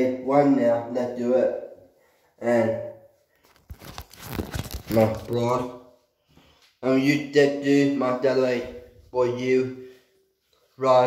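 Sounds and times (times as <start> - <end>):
hand rubbing on phone microphone: 3.6 - 5.5.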